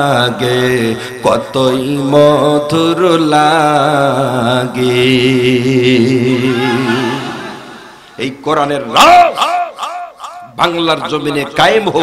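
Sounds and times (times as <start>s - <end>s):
man singing over loudspeakers: 0.0s - 7.3s.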